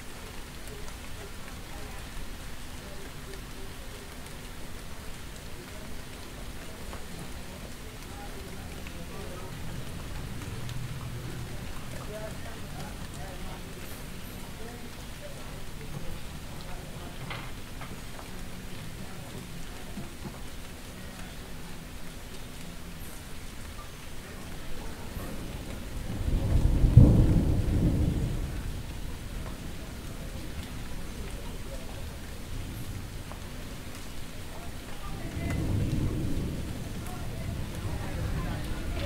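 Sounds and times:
low background noise: 0:00.0 - 0:39.0
thunder rumbling: 0:25.0 - 0:31.2, 0:35.0 - 0:39.0.

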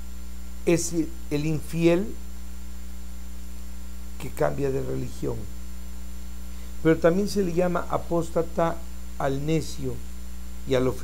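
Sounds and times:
high whine: 0:00.0 - 0:11.0
mains hum: 0:00.0 - 0:11.0.

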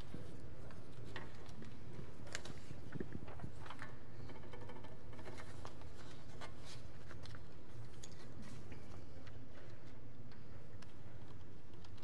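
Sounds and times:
small clicks and taps: 0:00.7 - 0:12.0.

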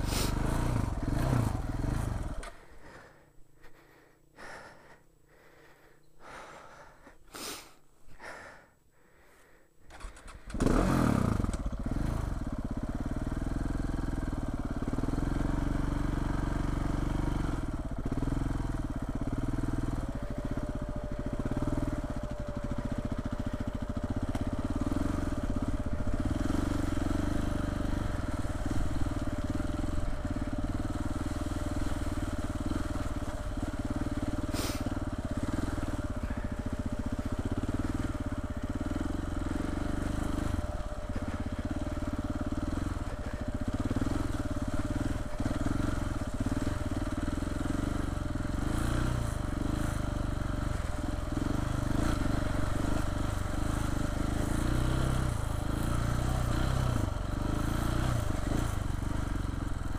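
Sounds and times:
motorcycle engine running: 0:00.0 - 0:06.9, 0:09.9 - 0:59.9.

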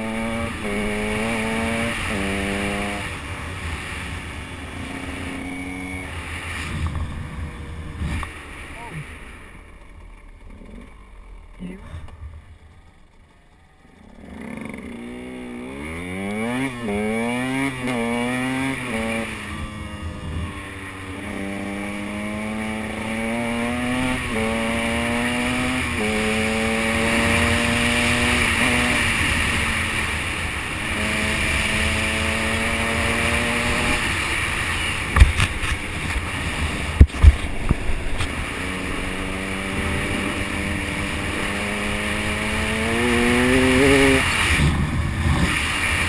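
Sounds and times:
motorbike engine revving: 0:00.0 - 0:46.0.

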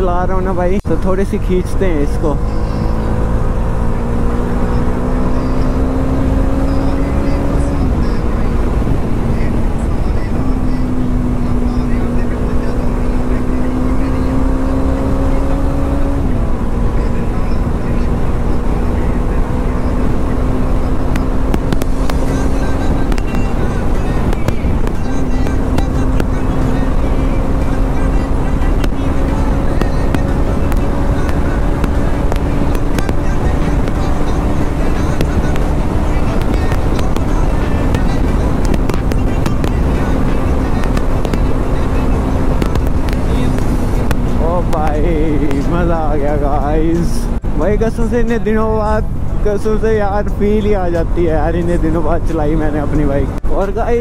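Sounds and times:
motorcycle engine shifting gears: 0:00.0 - 0:54.0
wind rush: 0:20.0 - 0:48.3.

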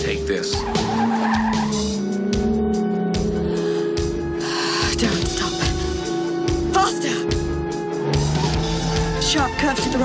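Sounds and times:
car tyres squealing: 0:00.0 - 0:05.0, 0:06.0 - 0:09.1
music with low pulse: 0:00.0 - 0:10.0.

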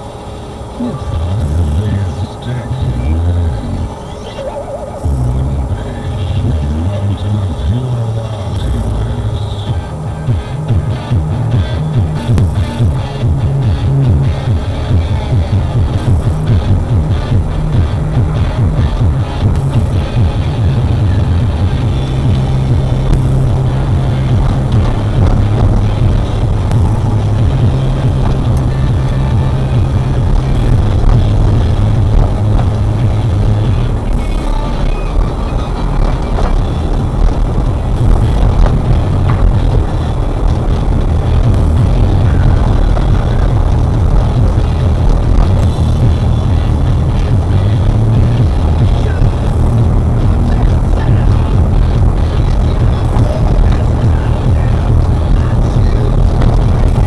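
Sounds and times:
bass-heavy music from car stereo: 0:00.0 - 0:57.0
car engine and road noise: 0:00.0 - 0:57.0.

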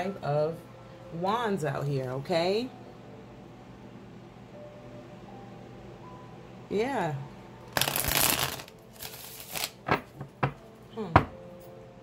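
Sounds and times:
cards being shuffled by hand: 0:07.8 - 0:10.1.

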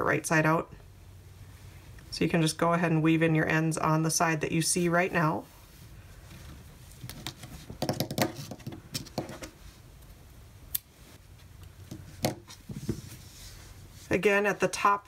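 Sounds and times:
yarn rustling: 0:11.0 - 0:15.0.

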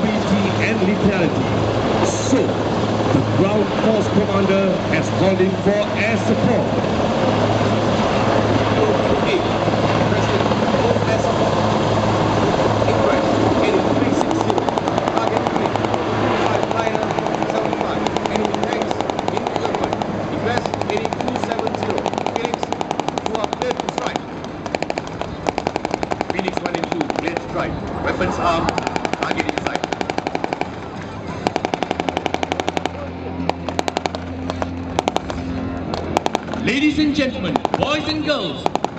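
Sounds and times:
helicopter rotor and engine: 0:00.0 - 0:38.9.

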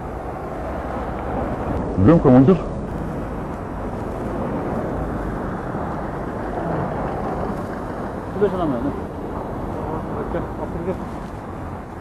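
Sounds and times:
muffled traffic rumble: 0:00.0 - 0:12.0.

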